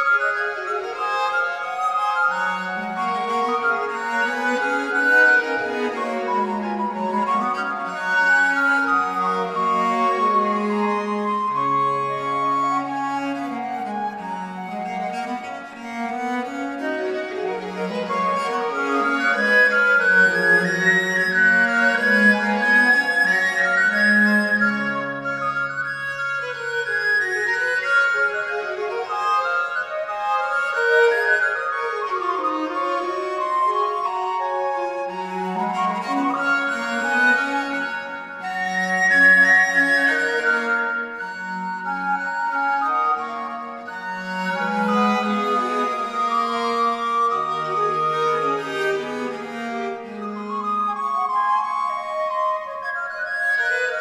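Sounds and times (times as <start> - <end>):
flute melody: 0.0 - 54.0
recorder melody: 0.0 - 54.0
violin: 0.0 - 54.0
viols: 0.0 - 54.0.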